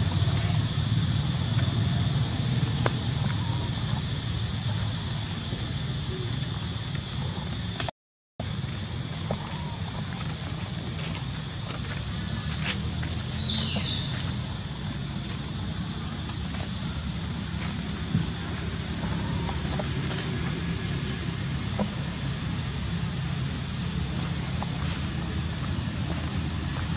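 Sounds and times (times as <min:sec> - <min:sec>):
thin steady high tone: 0:00.0 - 0:07.8.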